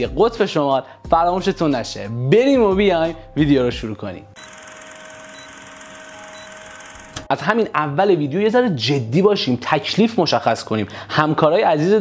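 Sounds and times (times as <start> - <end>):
film projector whirring and clatter: 4.4 - 7.3.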